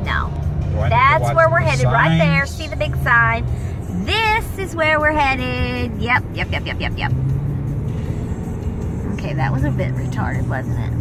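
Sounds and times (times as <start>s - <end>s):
car road noise rumble: 0.0s - 11.0s.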